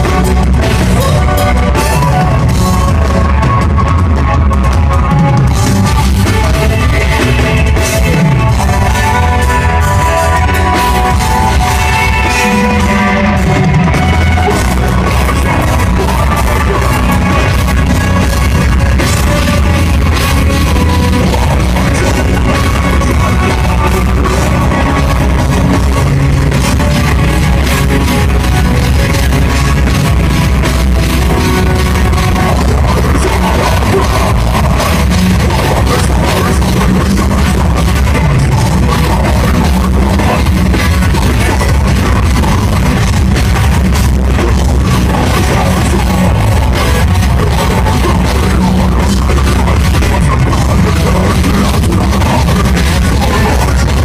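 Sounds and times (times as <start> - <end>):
distorted electric guitars: 0.0 - 54.0
fast drumming on drum kit: 0.0 - 54.0.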